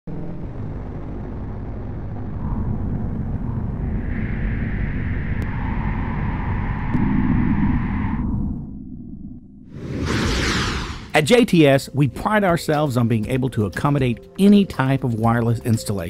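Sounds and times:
deep rumble: 0.1 - 11.2.

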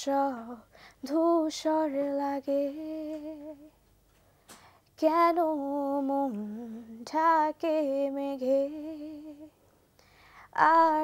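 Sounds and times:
woman singing unaccompanied: 0.0 - 3.8, 5.0 - 9.6, 10.4 - 11.0
intake of breath: 0.7 - 1.0, 10.0 - 10.5.

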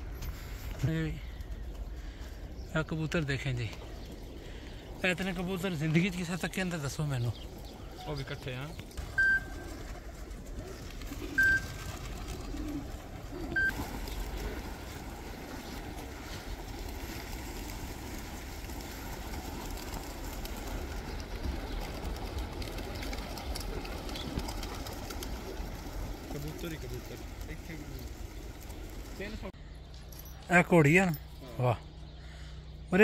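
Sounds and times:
pigeons cooing: 7.3 - 29.5.

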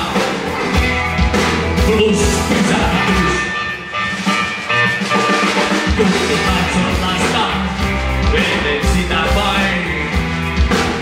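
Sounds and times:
bass guitar: 0.0 - 11.0
drums: 0.0 - 11.0
electric guitars: 0.0 - 11.0.

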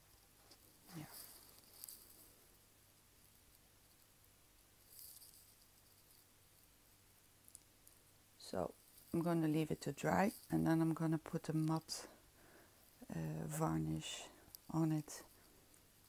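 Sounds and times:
faint rustles: 0.0 - 6.8
person softly speaking: 0.8 - 1.4, 8.4 - 12.2, 13.0 - 15.4.

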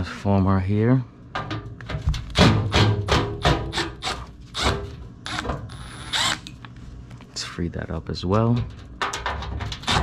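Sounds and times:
impact driver hammering: 2.3 - 6.4.

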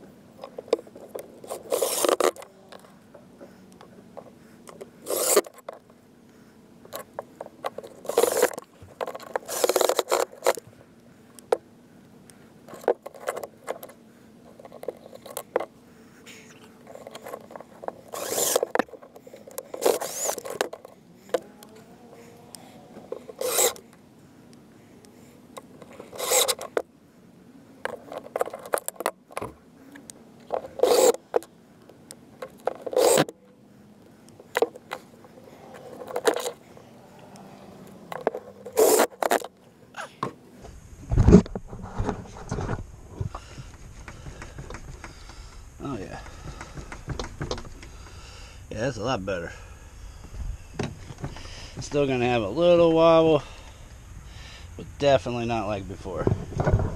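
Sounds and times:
scraping and handling: 0.4 - 6.0, 6.9 - 10.8, 12.6 - 24.0, 25.6 - 26.9, 27.8 - 33.4, 34.3 - 47.9
cordless drill driving screws: 1.5 - 2.4, 5.0 - 5.6, 8.1 - 8.6, 9.3 - 10.6, 18.0 - 18.9, 19.7 - 20.6, 23.2 - 23.8, 26.0 - 26.7, 30.7 - 31.2, 32.8 - 33.3, 38.7 - 39.5.

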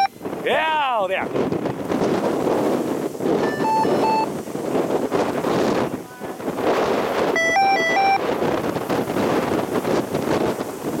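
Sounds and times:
wind buffeting microphone: 0.0 - 11.0
short electronic beeps: 3.4 - 4.3, 7.4 - 8.2.

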